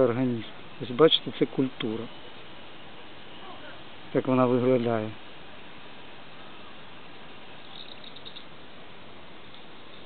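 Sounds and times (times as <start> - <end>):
outdoor background hiss: 0.0 - 10.0
small birds chirping: 7.6 - 8.6.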